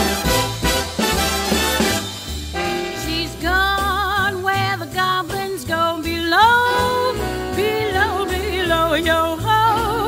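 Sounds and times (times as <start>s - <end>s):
person singing with vibrato: 2.9s - 10.0s.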